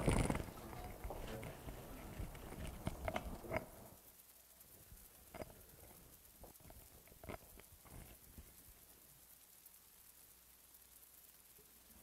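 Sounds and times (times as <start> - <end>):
soft steps and shuffling: 0.0 - 4.0.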